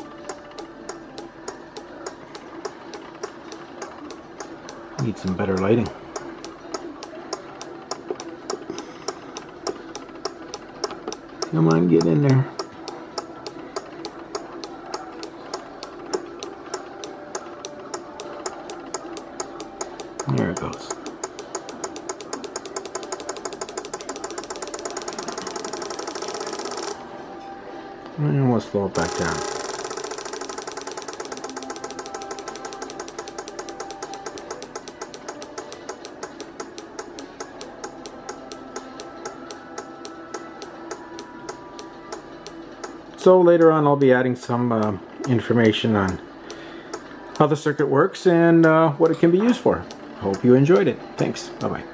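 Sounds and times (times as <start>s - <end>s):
relay clicking: 0.0s - 27.0s, 29.0s - 43.3s.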